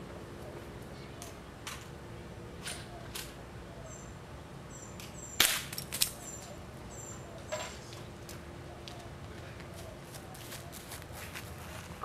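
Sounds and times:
bird chirps: 6.2s - 7.8s.

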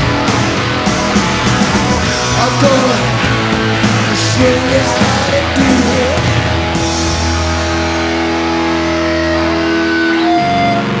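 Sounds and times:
distorted electric guitar and bass chord: 0.0s - 11.0s.

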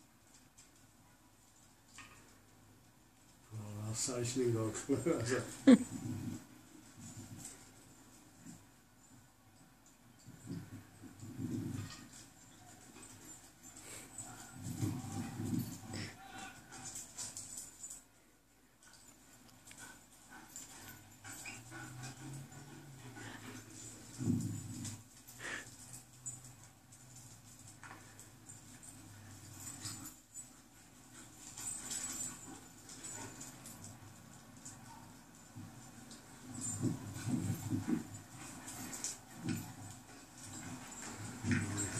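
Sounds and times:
dog whimpering and panting: 5.2s - 6.4s, 19.7s - 24.2s, 31.2s - 33.9s.

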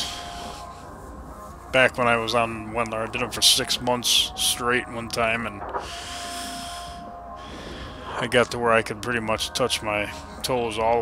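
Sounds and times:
man breathing: 0.0s - 1.2s, 5.7s - 8.3s.

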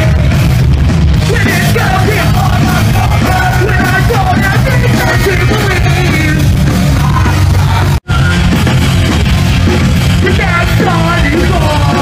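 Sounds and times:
punk rock band playing: 0.0s - 12.0s
shouted vocals: 1.3s - 6.3s.

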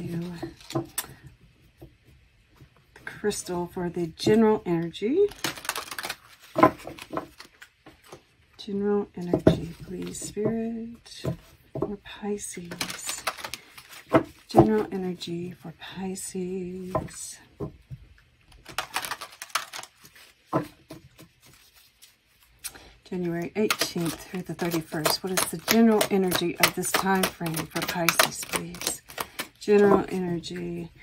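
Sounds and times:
cards being shuffled: 5.3s - 8.3s, 12.6s - 14.8s, 18.5s - 30.8s.

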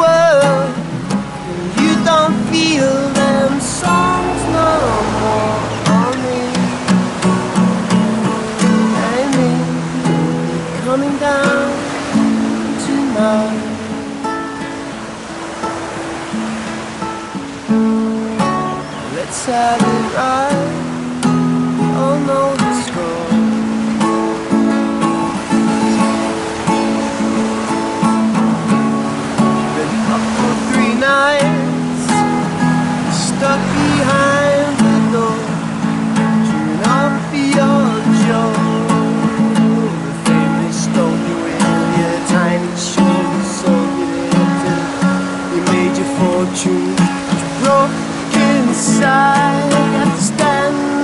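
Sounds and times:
acoustic guitar strumming chords: 0.0s - 51.0s.

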